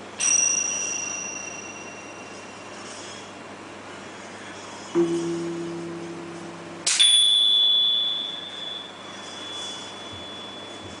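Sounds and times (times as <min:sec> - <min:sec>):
finger cymbals ringing: 0:00.2 - 0:03.0, 0:05.0 - 0:11.0.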